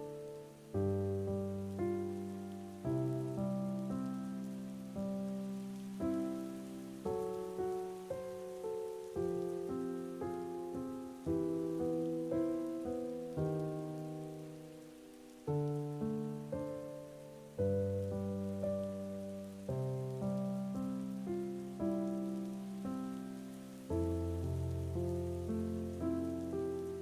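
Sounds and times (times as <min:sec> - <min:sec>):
faint steady hiss: 0:00.0 - 0:27.0
slow keyboard chords: 0:00.0 - 0:27.0.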